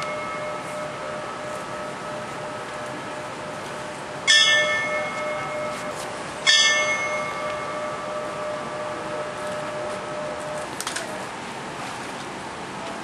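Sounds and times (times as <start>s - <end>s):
hand bell ringing: 0.0s - 2.0s, 4.3s - 8.0s.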